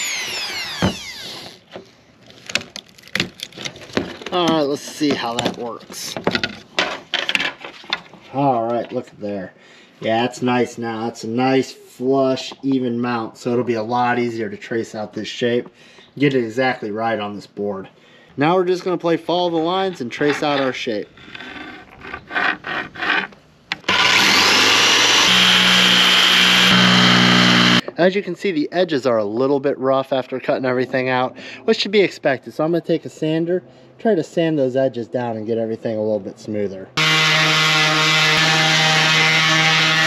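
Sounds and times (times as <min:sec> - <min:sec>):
power tool cutting plastic: 0:00.0 - 0:01.8, 0:23.7 - 0:27.8, 0:37.0 - 0:40.0.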